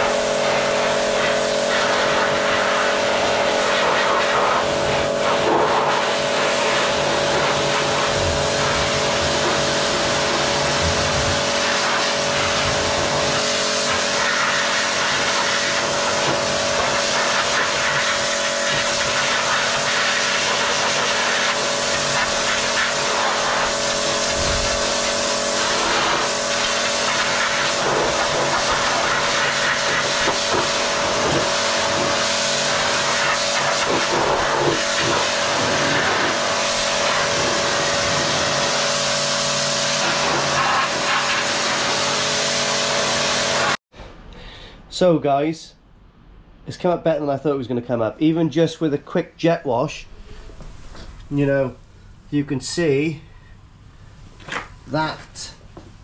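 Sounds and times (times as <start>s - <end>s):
pressure washer running: 0.0s - 43.8s
water jet hissing on steel: 0.0s - 43.8s.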